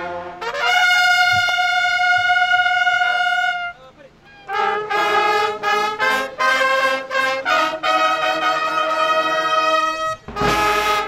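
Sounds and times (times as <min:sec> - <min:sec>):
trumpets holding a high note: 0:00.0 - 0:11.0.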